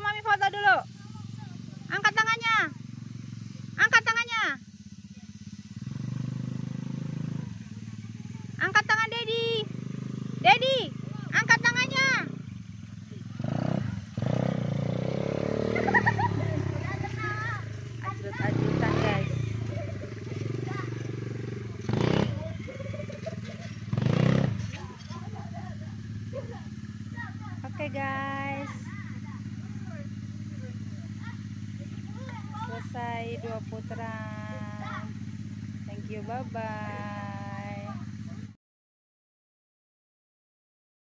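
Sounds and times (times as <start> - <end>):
quad bike engine under throttle: 0.0 - 38.6.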